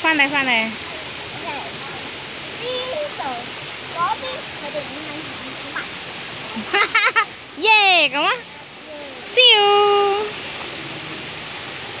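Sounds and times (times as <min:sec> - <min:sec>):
stream flowing over boulders: 0:00.0 - 0:12.0.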